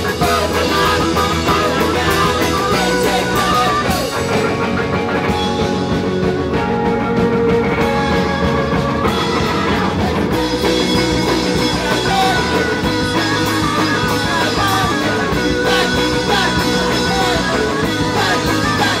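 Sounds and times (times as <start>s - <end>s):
drum kit: 0.0s - 19.0s
electric guitars: 0.0s - 19.0s.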